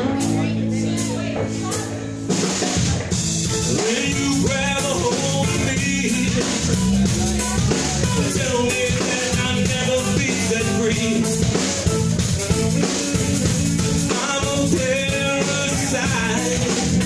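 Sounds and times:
bass guitar: 0.0s - 17.0s
drum kit beat: 0.0s - 17.0s
guitar: 0.0s - 17.0s.

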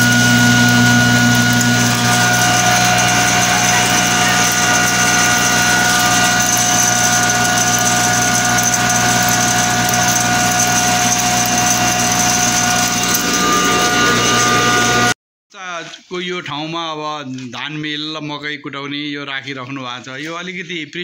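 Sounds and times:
grain mill humming and whining: 0.0s - 15.2s.

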